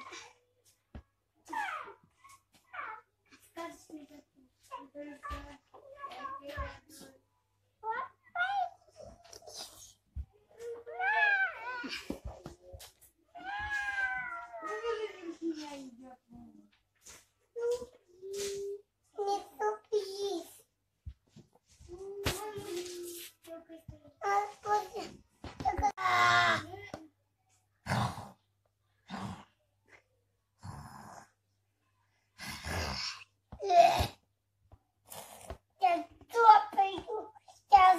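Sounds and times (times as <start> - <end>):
toddler crying: 13.4 - 15.2.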